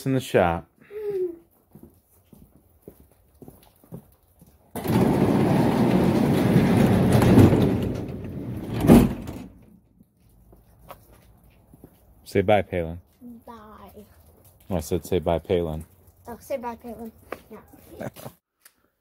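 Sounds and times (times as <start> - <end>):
garage door rumbling shut: 4.8 - 9.7
garage door thud: 4.8 - 9.8.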